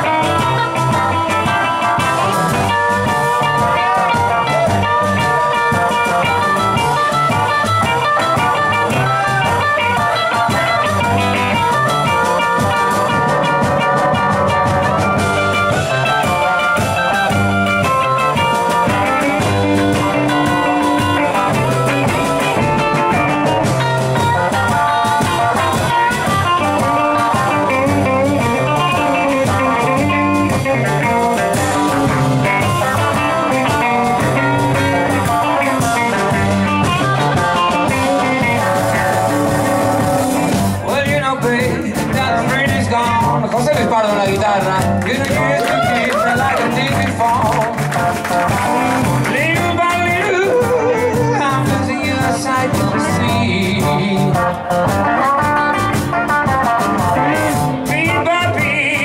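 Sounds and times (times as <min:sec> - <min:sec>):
blues band playing: 0:00.0 - 0:59.0
drum kit: 0:00.0 - 0:59.0
electric guitars: 0:00.0 - 0:59.0
upright double bass: 0:00.0 - 0:59.0.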